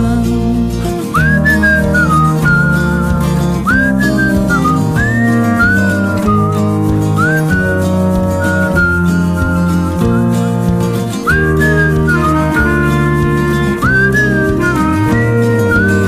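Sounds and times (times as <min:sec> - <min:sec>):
guitar and band backing: 0:00.0 - 0:16.0
whistled melody: 0:00.6 - 0:16.0.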